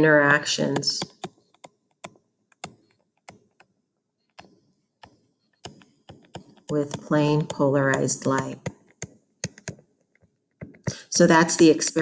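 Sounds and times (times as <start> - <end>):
stylus tapping on tablet: 0.0 - 11.0.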